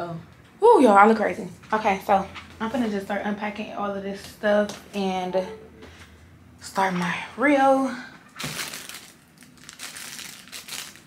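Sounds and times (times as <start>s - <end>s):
crinkling and rustling: 8.3s - 11.0s.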